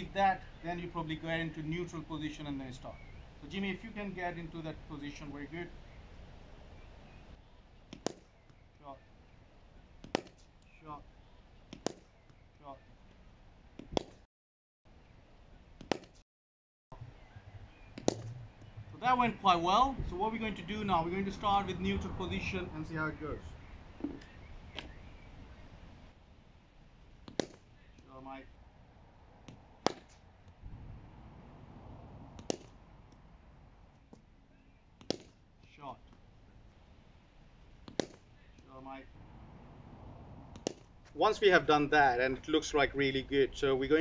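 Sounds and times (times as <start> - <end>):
cricket bat striking ball: 18.0 - 18.7, 29.5 - 30.2, 32.4 - 32.8, 35.0 - 35.4, 37.8 - 38.2.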